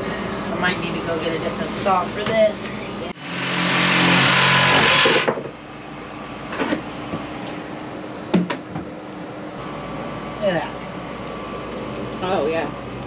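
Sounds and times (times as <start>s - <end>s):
reciprocating saw cutting pipe: 3.2s - 5.4s.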